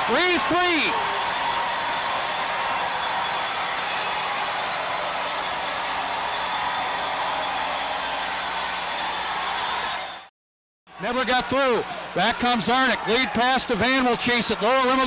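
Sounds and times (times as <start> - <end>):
crowd cheering: 0.0 - 10.3, 10.9 - 15.0.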